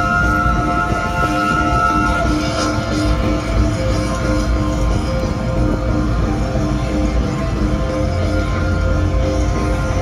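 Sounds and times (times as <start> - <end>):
muffled rock band music: 0.0 - 10.0.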